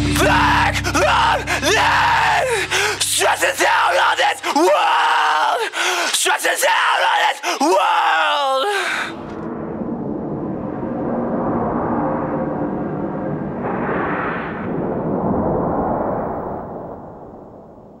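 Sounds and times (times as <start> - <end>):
person screaming vocal: 0.1 - 9.2.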